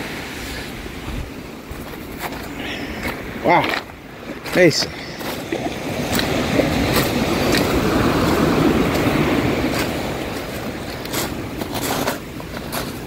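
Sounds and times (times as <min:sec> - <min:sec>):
surf on pebble beach: 0:00.0 - 0:13.0
footsteps on stones: 0:01.7 - 0:13.0.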